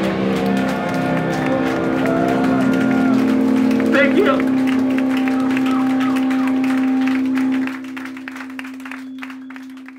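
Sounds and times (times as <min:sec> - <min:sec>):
crowd clapping and cheering: 0:00.0 - 0:09.9.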